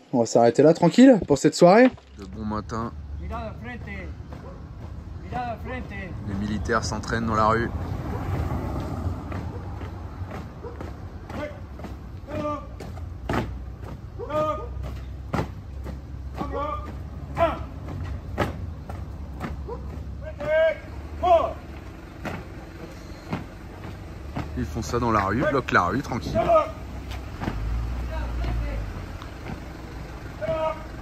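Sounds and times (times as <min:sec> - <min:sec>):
voices calling and chatting: 0:00.0 - 0:31.0
footfalls: 0:07.7 - 0:30.8.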